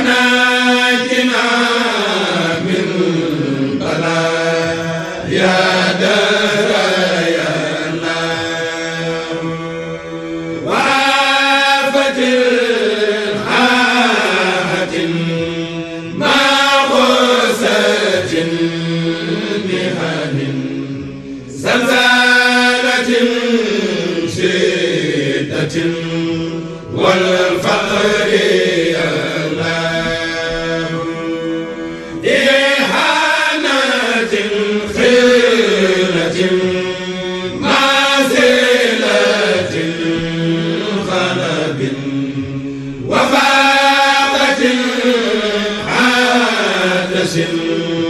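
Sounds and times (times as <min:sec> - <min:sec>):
voices chanting melismatic phrases: 0:00.0 - 0:48.0.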